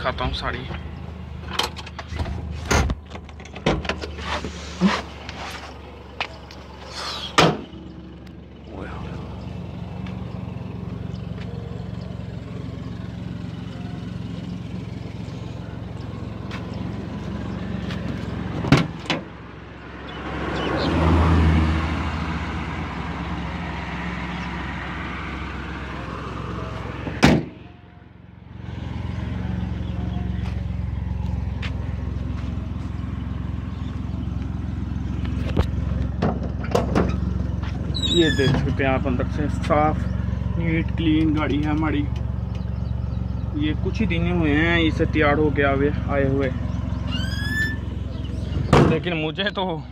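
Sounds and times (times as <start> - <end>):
road noise: 0.0 - 49.9
van engine running: 0.0 - 49.9.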